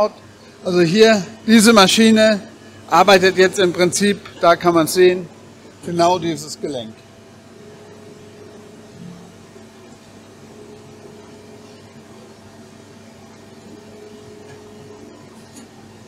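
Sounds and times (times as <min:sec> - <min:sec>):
faint machine whine: 0:00.0 - 0:16.0
milling machine hum: 0:00.0 - 0:16.0.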